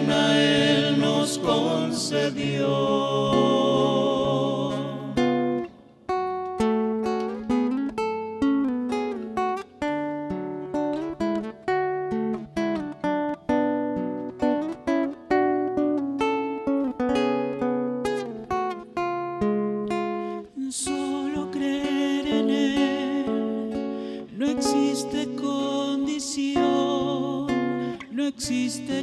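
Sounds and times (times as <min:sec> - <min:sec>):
fingerpicked classical guitar: 0:00.0 - 0:29.0.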